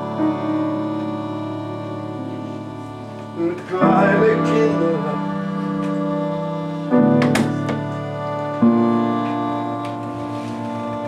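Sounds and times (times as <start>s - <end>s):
upright piano chords: 0.0s - 11.0s.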